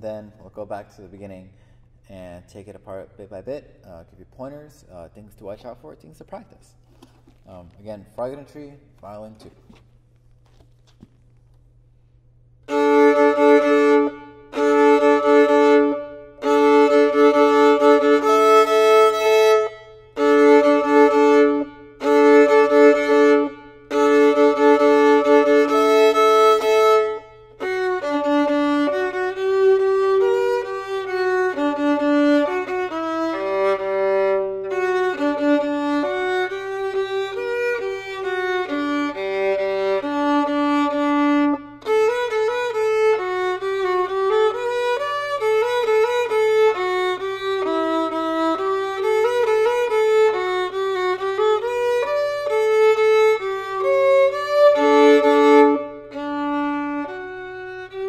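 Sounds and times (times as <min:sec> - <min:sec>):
solo violin playing: 0:12.6 - 0:58.0.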